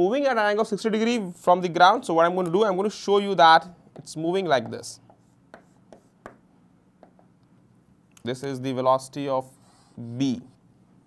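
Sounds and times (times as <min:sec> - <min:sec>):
chalk tapping on chalkboard: 0:03.9 - 0:07.4.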